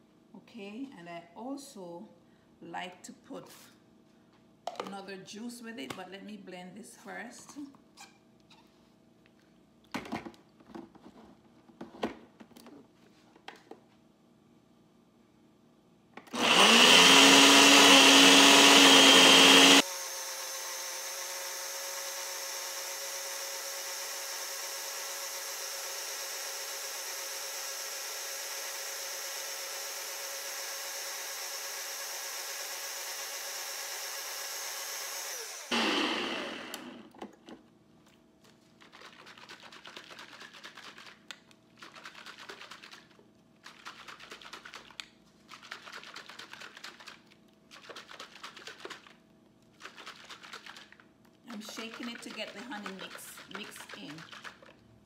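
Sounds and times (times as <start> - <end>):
blender motor running: 16.3 - 37.1
blender cup rattling: 38.8 - 49.2, 49.8 - 54.8.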